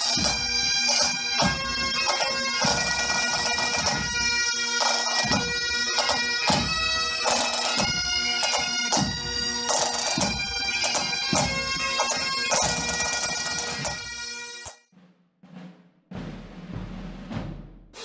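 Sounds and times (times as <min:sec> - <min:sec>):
bagpipes melody over drones: 0:00.0 - 0:14.7
drums keeping a beat: 0:00.0 - 0:18.0.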